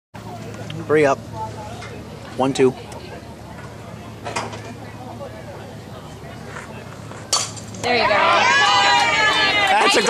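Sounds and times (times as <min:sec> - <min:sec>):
faint crowd chatter: 0:00.2 - 0:10.0.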